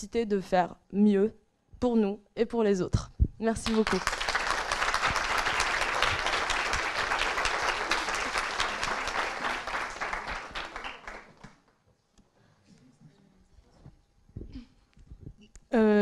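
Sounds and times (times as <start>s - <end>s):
audience applauding: 3.7s - 11.7s.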